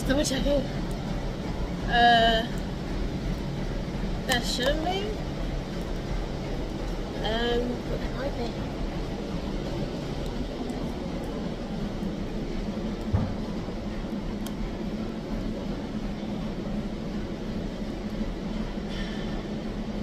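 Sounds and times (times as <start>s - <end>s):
gym rumble: 0.0s - 20.0s
low hum: 0.0s - 20.0s
short thump: 13.1s - 13.4s.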